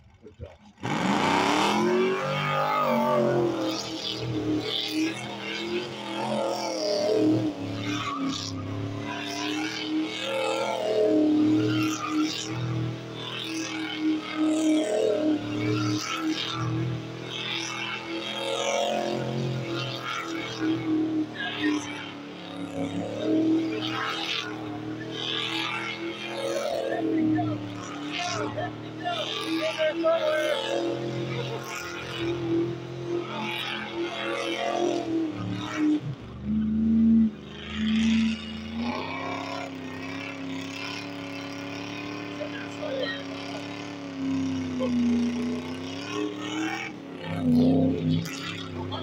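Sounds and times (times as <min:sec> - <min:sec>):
car engine revving high: 0:00.3 - 0:49.0.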